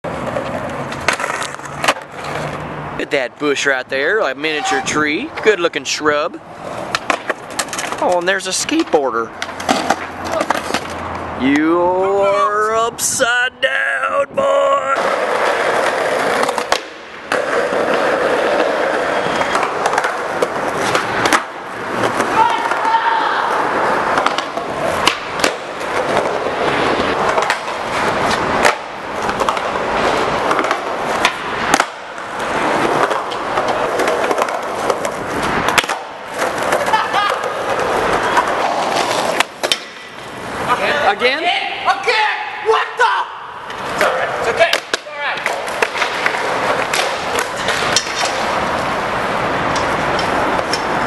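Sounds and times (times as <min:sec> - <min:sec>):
skateboard wheels rolling on concrete: 0:00.0 - 0:51.0
skateboard clacks popping and landing: 0:00.2 - 0:02.6, 0:06.8 - 0:08.2, 0:08.8 - 0:11.1, 0:15.0 - 0:23.0, 0:24.0 - 0:40.3, 0:43.7 - 0:48.7
loud rushing noise: 0:14.8 - 0:36.8, 0:45.6 - 0:51.0.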